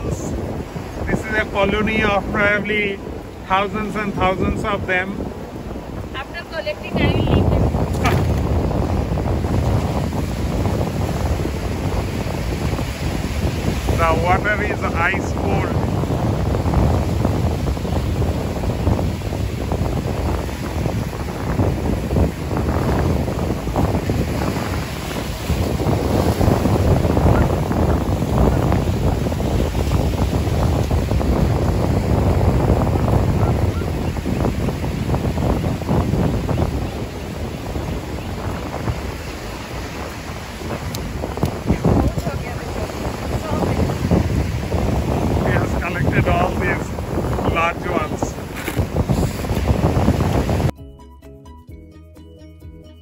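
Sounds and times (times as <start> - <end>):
surf breaking on rocks: 0.0 - 33.5, 34.2 - 50.7
wind buffeting microphone: 0.0 - 50.8.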